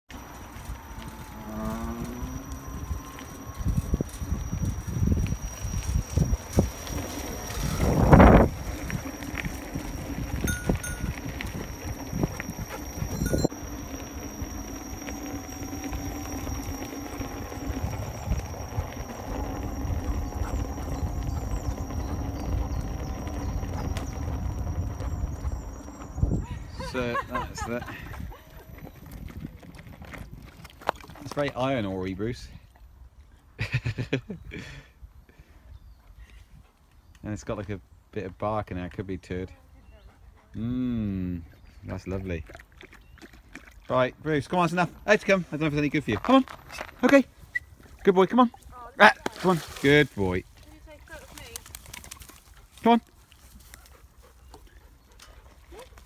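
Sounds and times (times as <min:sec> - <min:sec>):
brief rising whine: 0:00.1 - 0:29.2
wind on microphone: 0:00.7 - 0:13.5, 0:16.0 - 0:31.2.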